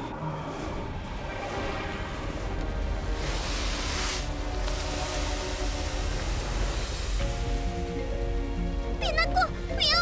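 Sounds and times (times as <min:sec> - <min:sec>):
deep rumble: 0:00.0 - 0:09.0
background music: 0:00.0 - 0:10.0
sand pouring hiss: 0:02.8 - 0:07.7.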